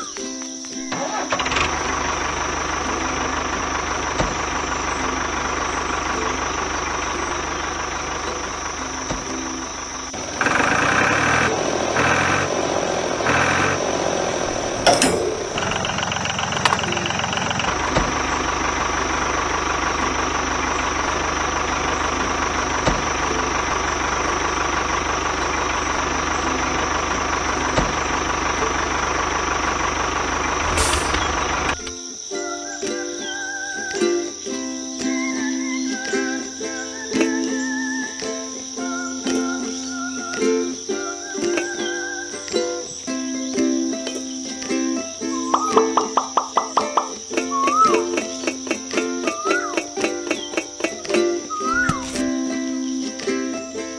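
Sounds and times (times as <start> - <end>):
tractor engine idling: 0.0 - 53.9.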